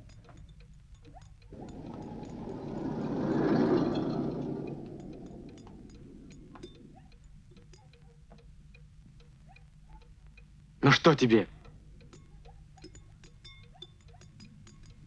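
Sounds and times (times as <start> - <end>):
soft irregular ticking: 0.0 - 15.0
rushing noise: 1.6 - 6.9.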